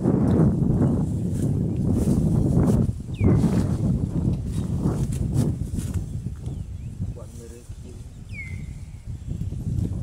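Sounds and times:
grass rustling and tearing: 1.1s - 6.2s.

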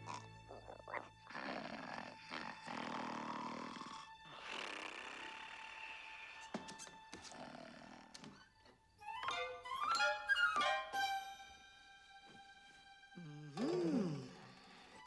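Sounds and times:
dog snoring: 0.0s - 8.4s
soft background music: 0.0s - 15.0s.

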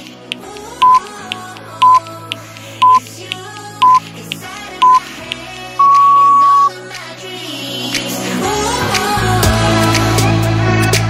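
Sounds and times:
upbeat pop music: 0.0s - 11.0s
longer higher beep: 0.8s - 1.0s, 2.8s - 3.0s, 4.8s - 5.0s, 5.8s - 6.7s
timer countdown beeps: 0.8s - 1.1s, 1.8s - 2.0s, 2.8s - 3.0s, 3.8s - 4.0s, 4.8s - 5.0s, 5.8s - 6.7s.

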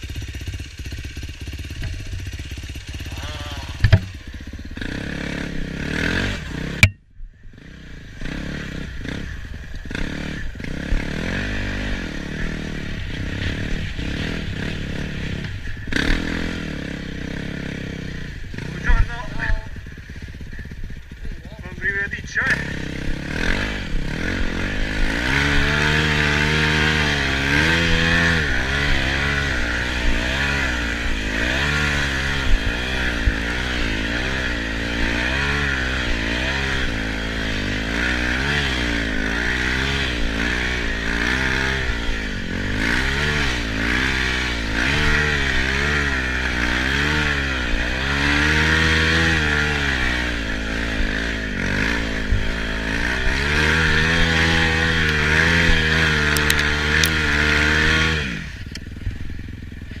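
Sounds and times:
dirt bike engine revving: 0.0s - 60.0s.

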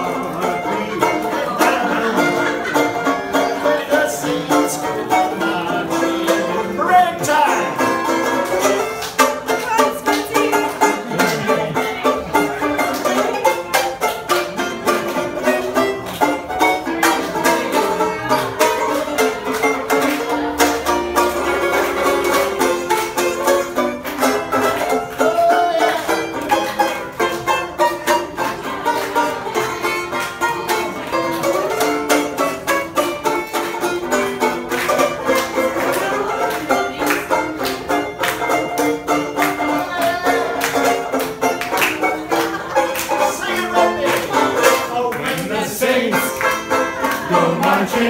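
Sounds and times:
banjo picked notes: 0.0s - 48.0s.

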